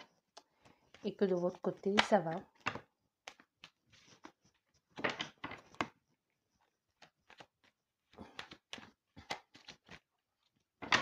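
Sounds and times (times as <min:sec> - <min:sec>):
cards being shuffled: 0:02.0 - 0:06.0, 0:06.9 - 0:10.2.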